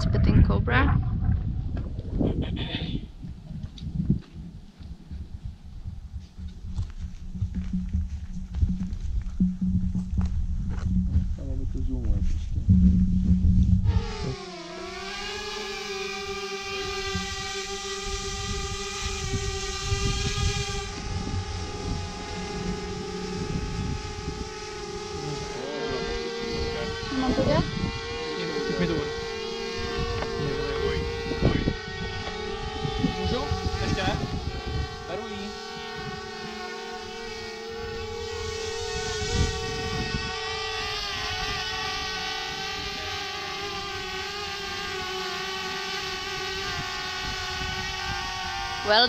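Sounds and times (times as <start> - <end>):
drone propellers whining: 0.0 - 49.0.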